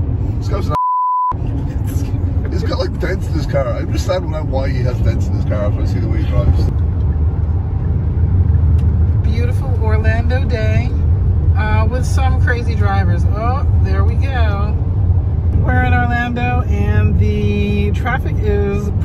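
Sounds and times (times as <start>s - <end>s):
car engine and tyres rumbling: 0.0s - 19.0s
voices: 1.5s - 6.7s, 9.2s - 11.0s, 11.6s - 14.8s, 15.6s - 19.0s.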